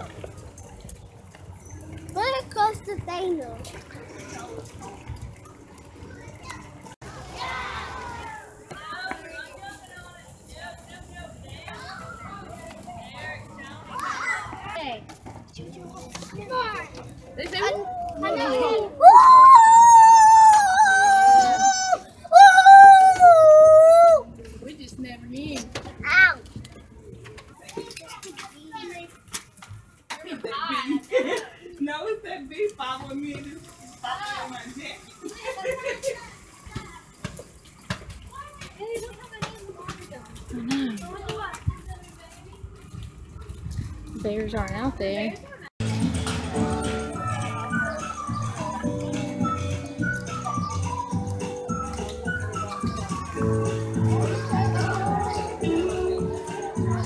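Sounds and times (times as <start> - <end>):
children chattering: 1.5 - 14.9, 15.8 - 24.4, 33.7 - 37.2, 50.6 - 57.0.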